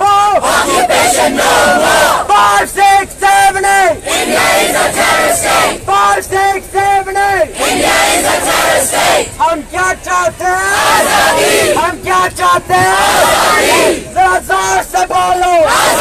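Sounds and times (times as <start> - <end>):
crowd shouting a chant: 0.0 - 6.6, 7.3 - 9.4, 10.2 - 16.0.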